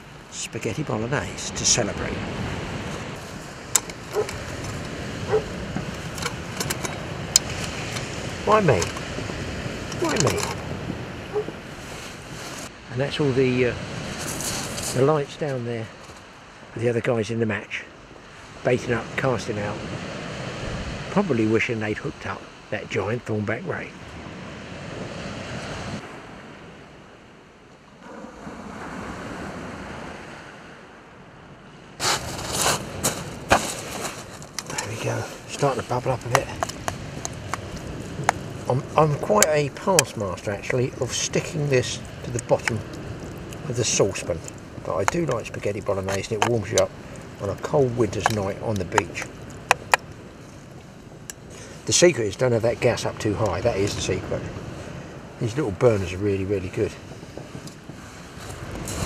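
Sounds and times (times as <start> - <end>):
sea waves washing on beach: 0.0 - 59.0
wind: 0.0 - 59.0.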